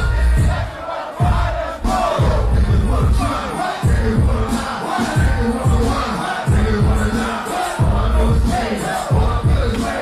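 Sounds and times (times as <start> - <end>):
crowd shouting and chanting: 0.0 - 10.0
heavy bass beat: 0.0 - 10.0.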